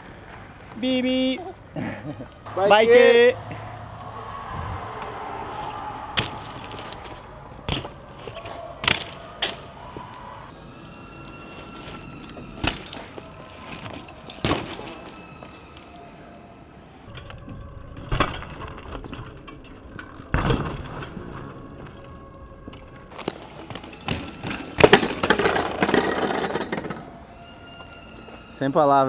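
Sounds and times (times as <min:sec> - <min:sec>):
bike wheels rolling on concrete: 0:00.0 - 0:29.0
bike clacks and thuds on landing: 0:05.6 - 0:09.7, 0:12.6 - 0:15.6, 0:23.2 - 0:27.0.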